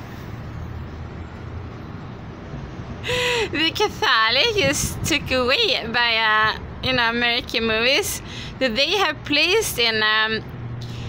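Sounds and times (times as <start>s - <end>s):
urban background rumble: 0.0s - 11.0s.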